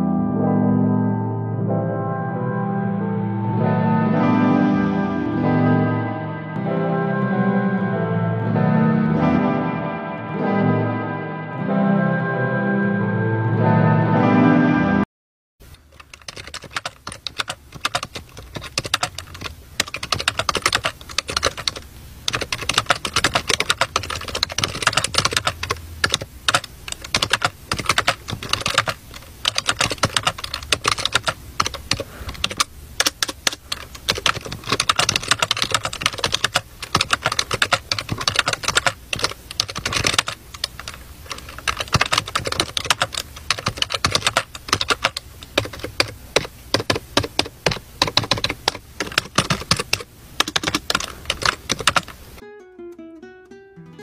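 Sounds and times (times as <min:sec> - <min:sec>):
keyboard typing: 0:15.7 - 0:52.4.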